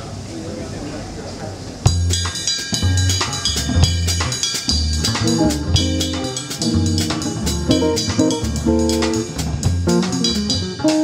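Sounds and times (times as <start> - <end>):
jazz trio playing: 1.8 - 11.0
deep bass notes: 1.9 - 11.0
drum hits: 1.9 - 11.0.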